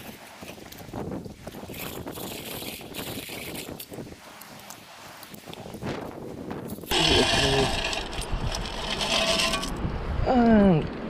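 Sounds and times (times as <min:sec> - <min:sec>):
sand and pebbles rattling in metal scoop: 0:00.4 - 0:04.1, 0:06.6 - 0:09.8.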